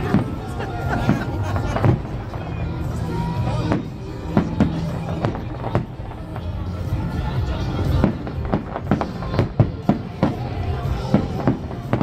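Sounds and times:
music playing: 0:00.0 - 0:12.0.

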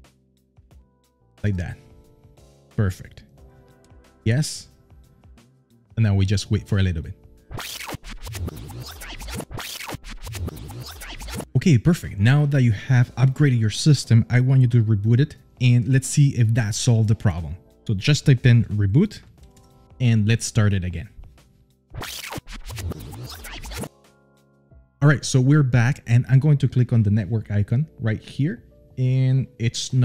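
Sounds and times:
glitchy electronic transition effect: 0:07.5 - 0:11.5, 0:22.0 - 0:23.9.

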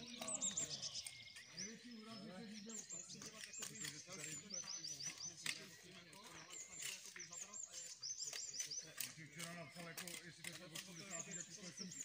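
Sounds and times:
murmur of men's voices: 0:00.0 - 0:12.0
songbird chirping: 0:00.0 - 0:12.0.

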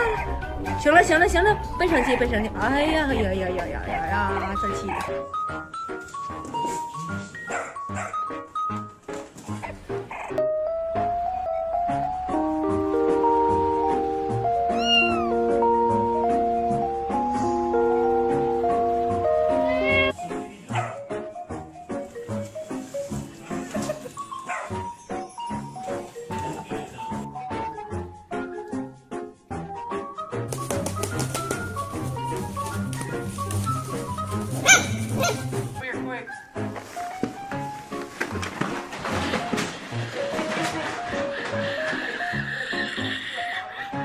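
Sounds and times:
background music: 0:00.0 - 0:44.0
cat meowing: 0:14.7 - 0:15.4, 0:19.6 - 0:20.2.

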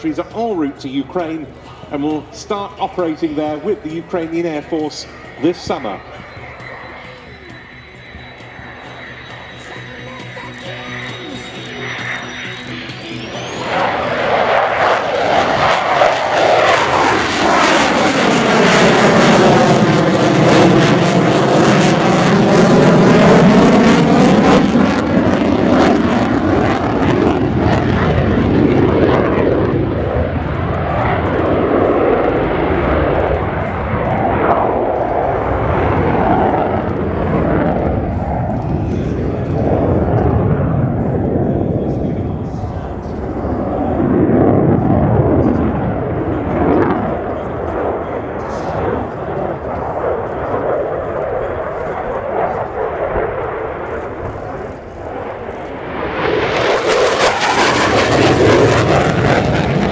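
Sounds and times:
jet engine whine: 0:00.0 - 0:59.9
jet roaring overhead: 0:00.0 - 0:59.9.

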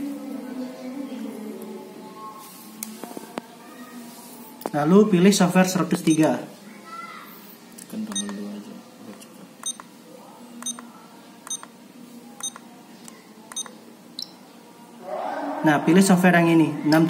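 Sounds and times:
short high keypad beeps: 0:08.1 - 0:08.4, 0:09.6 - 0:09.9, 0:10.6 - 0:10.8, 0:11.5 - 0:11.7, 0:12.4 - 0:12.6, 0:13.5 - 0:14.4.

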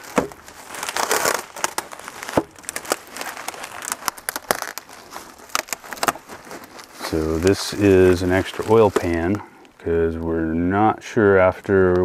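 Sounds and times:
bubble wrap and plastic crinkling: 0:00.0 - 0:10.4.

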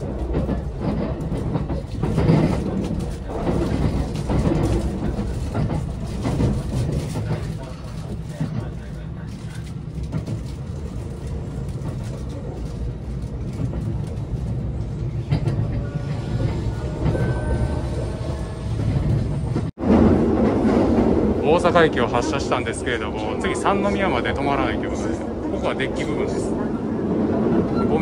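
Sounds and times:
train running rumble: 0:00.0 - 0:28.0.

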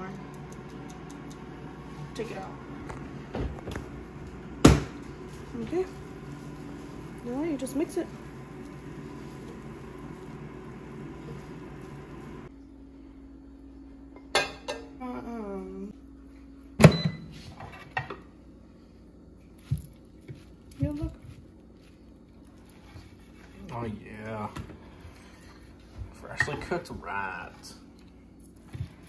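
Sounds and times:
steady hum: 0:00.0 - 0:29.0.

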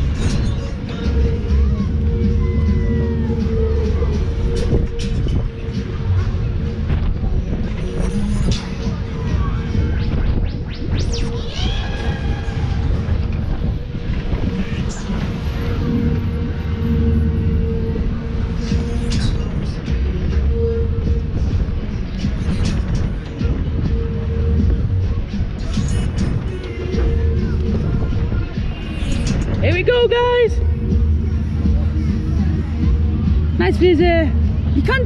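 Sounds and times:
low machinery rumble: 0:00.0 - 0:34.8
fairground ride music: 0:00.0 - 0:35.0.

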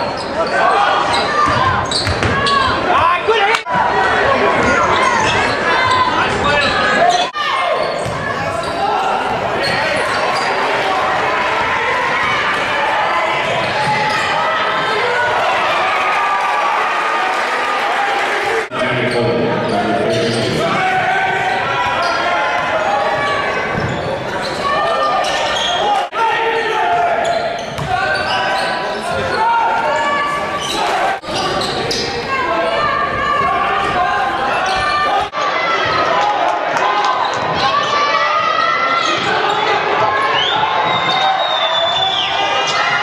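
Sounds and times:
crowd and player voices: 0:00.0 - 0:43.0.

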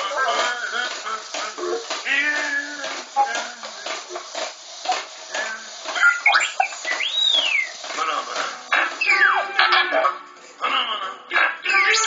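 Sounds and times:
electronic whistle: 0:06.0 - 0:07.8
robot beeps and chirps: 0:06.0 - 0:07.8, 0:09.0 - 0:09.6, 0:11.7 - 0:12.0.

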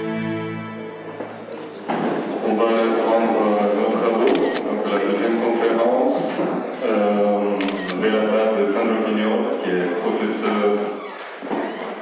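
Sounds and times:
man speaking into a microphone: 0:02.5 - 0:11.0
camera shutter clicks: 0:04.3 - 0:04.8, 0:07.6 - 0:08.0.

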